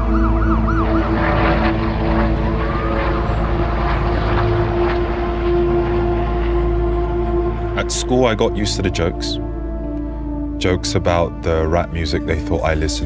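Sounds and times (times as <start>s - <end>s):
emergency siren yelping and wailing: 0.0s - 10.6s
city noise: 0.0s - 11.4s
ambient music drone: 0.0s - 13.0s.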